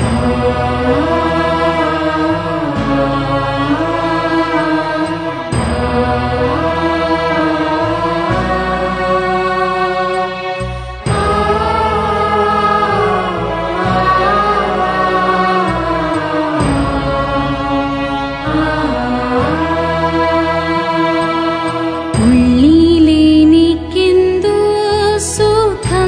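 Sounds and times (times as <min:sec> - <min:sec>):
sustained low instrumental chords: 0:00.0 - 0:24.7
person singing a hymn: 0:00.0 - 0:26.0.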